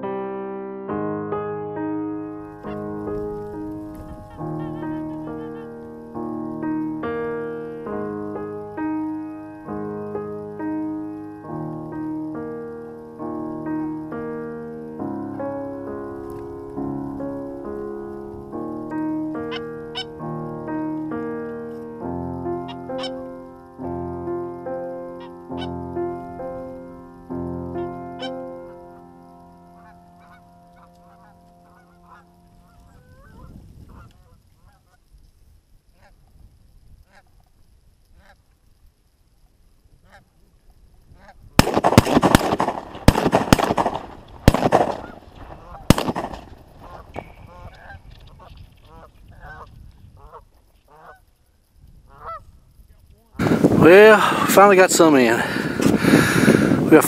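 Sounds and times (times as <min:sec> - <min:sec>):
piano music: 0:00.0 - 0:33.5, 0:41.6 - 0:48.1, 0:53.4 - 0:57.0
geese honking: 0:02.4 - 0:11.5, 0:18.9 - 0:21.1, 0:22.6 - 0:23.7, 0:25.2 - 0:25.8, 0:27.8 - 0:35.1, 0:42.4 - 0:51.4, 0:52.1 - 0:53.3
shotgun blasts: 0:41.6 - 0:47.3.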